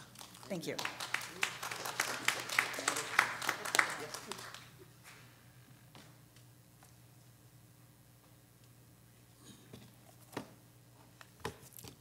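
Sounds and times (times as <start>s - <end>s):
people clapping: 0.0s - 5.3s.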